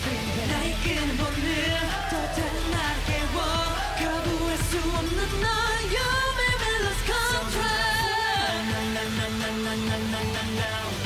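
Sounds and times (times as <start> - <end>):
man singing: 0.0 - 11.0
pop dance song: 0.0 - 11.0.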